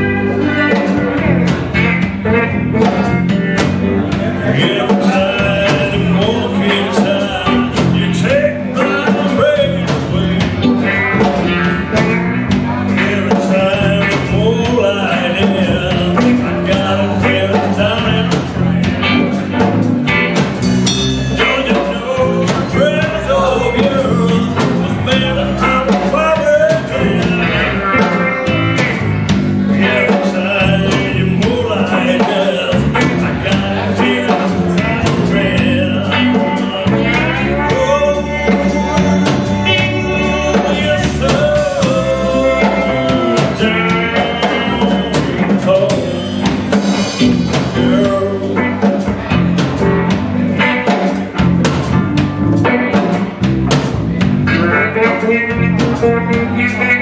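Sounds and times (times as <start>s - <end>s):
live blues band: 0.0s - 57.0s.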